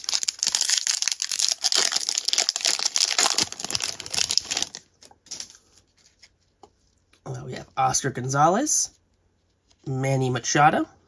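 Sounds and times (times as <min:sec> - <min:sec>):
wrapper tearing and crumpling: 0:00.0 - 0:05.5.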